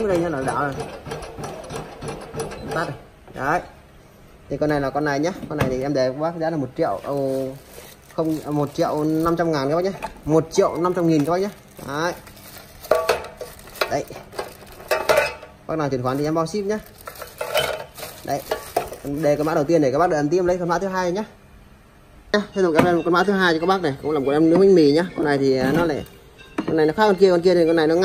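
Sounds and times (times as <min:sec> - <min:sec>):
plastic bag crinkling: 0:06.8 - 0:15.1, 0:16.1 - 0:19.7.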